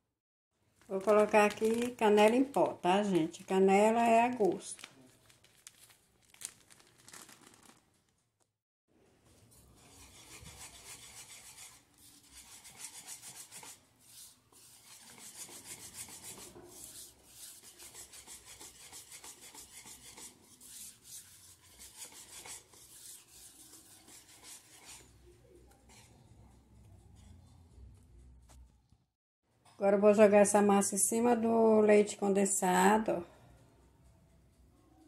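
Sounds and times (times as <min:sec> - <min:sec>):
wire whisk beating batter in bowl: 0:09.4 - 0:25.1.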